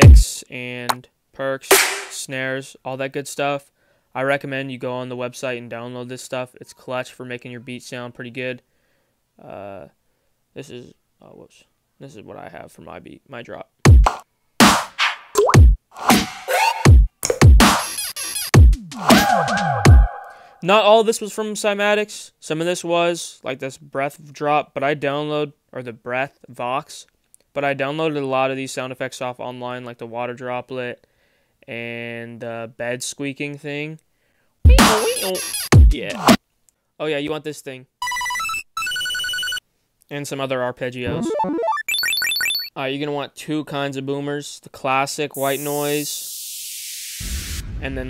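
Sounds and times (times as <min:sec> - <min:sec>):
deep kick drums: 0:00.0 - 0:00.3, 0:13.9 - 0:14.1, 0:15.6 - 0:15.8, 0:16.9 - 0:17.7, 0:18.6 - 0:18.8, 0:34.7 - 0:35.0, 0:35.8 - 0:36.0
synth playing high notes: 0:19.0 - 0:20.5, 0:41.0 - 0:42.5
noise hits: 0:47.2 - 0:48.0.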